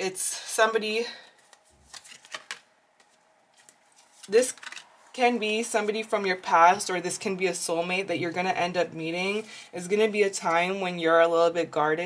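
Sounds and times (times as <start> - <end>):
cards slapping and sliding on table: 1.4 - 4.8.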